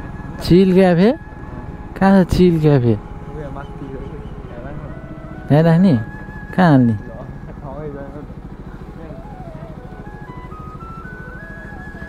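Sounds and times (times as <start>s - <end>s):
scooter engine running: 0.0s - 12.0s
faint music: 0.1s - 12.0s.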